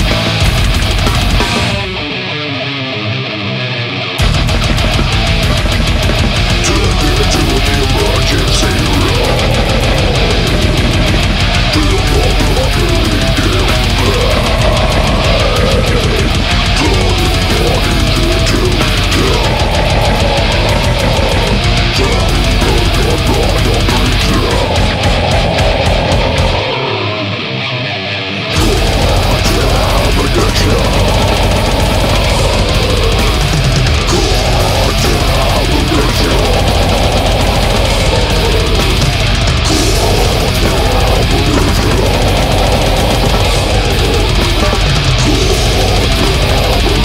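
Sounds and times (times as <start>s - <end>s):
rapid drumming: 0.0s - 2.1s, 4.2s - 26.8s, 28.5s - 47.0s
death metal music: 0.0s - 47.0s
distorted guitars: 0.0s - 47.0s
rapid evenly spaced hits: 4.2s - 26.6s, 28.6s - 47.0s.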